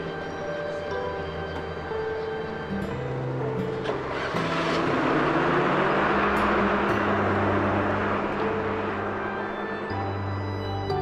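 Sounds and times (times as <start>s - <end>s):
bus rushing noise: 0.0s - 11.0s
soft background music: 0.0s - 11.0s.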